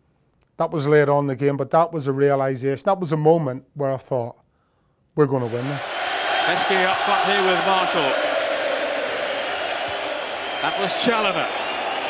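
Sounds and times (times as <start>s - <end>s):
stadium crowd roar: 5.4s - 12.0s.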